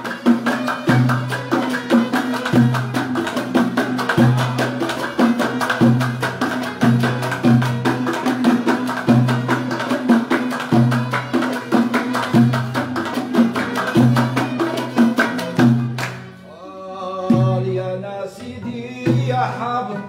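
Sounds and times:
fast hand-clapping: 0.0 - 16.3
bowed string instrument: 0.0 - 20.0
oud: 0.0 - 20.0
plucked lute: 0.0 - 20.0.

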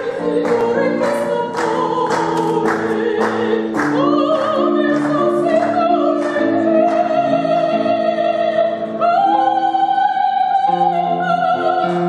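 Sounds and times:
woman singing operatically: 0.0 - 12.0.

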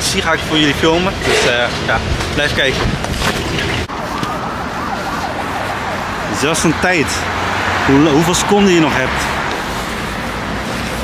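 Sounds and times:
street noise: 0.0 - 11.0
pedestrian crossing warbling signal: 3.9 - 10.1.

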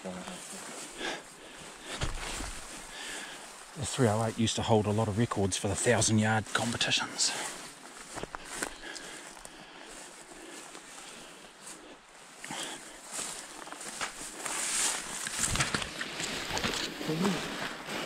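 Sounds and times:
footsteps through tall grass: 0.0 - 18.0
grass brushing against clothing: 0.0 - 18.0.

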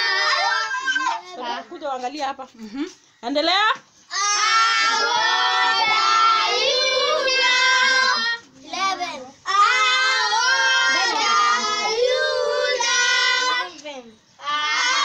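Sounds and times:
children singing together: 4.1 - 13.8, 14.4 - 15.0.

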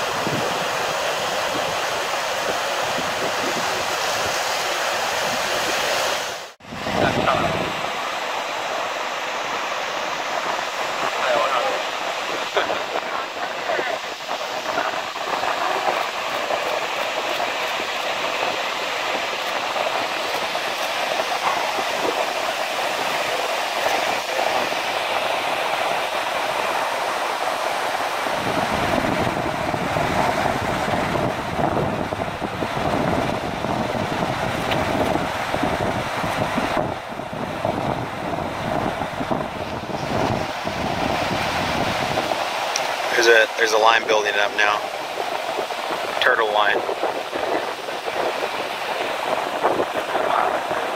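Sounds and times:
surf washing over rocky shore: 0.0 - 50.9
wind rumble on microphone: 0.0 - 50.9.

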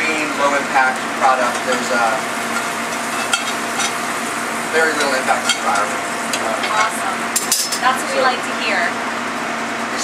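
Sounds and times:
shrimp sizzling in a pan: 0.0 - 8.9
steady low hum: 0.0 - 10.0.

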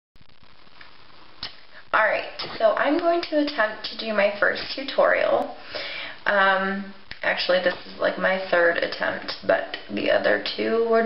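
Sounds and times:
room tone hiss: 0.2 - 11.0.

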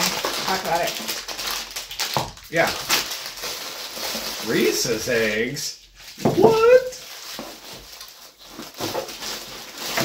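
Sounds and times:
paper and wrappers rustling: 0.0 - 10.0
person saying yeah: 6.3 - 7.0.

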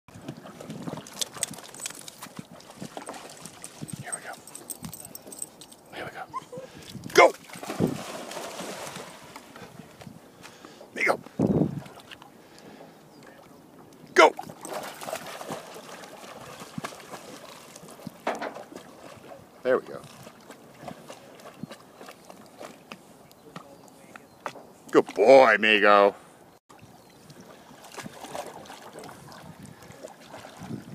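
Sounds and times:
dogs splashing in water: 0.2 - 5.4, 7.3 - 9.6, 14.2 - 23.7, 27.6 - 30.9.

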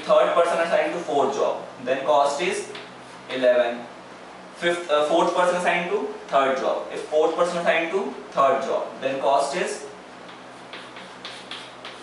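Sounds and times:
chalk tapping on blackboard: 10.2 - 12.0.

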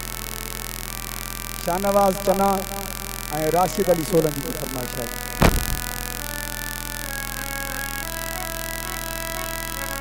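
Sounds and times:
electrical hum from sound system: 0.0 - 10.0.

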